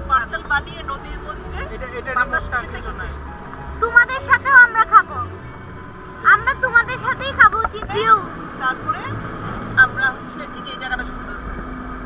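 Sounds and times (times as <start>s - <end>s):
road rumble: 0.0s - 12.0s.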